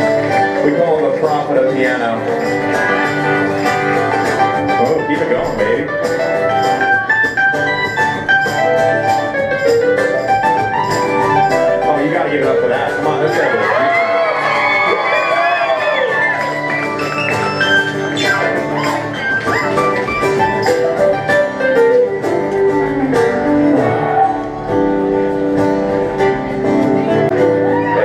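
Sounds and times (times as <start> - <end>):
live band playing: 0.0 - 28.0.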